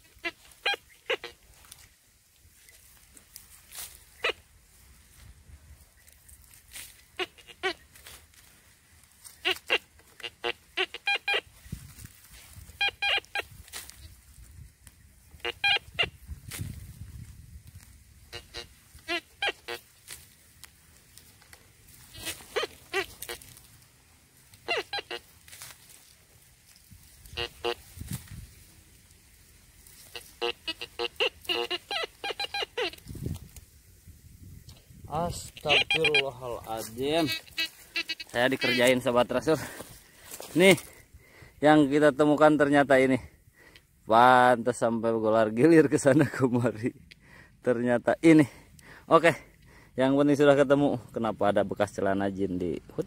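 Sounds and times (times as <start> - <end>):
metal detector beeps: 12.6 - 13.5, 15.4 - 16.1, 30.1 - 33.1, 35.4 - 39.1.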